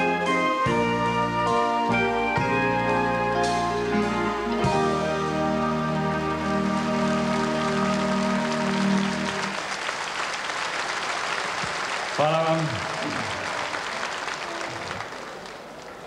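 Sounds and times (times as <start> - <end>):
orchestra held chord: 0.0 - 9.6
audience applause: 6.2 - 16.0.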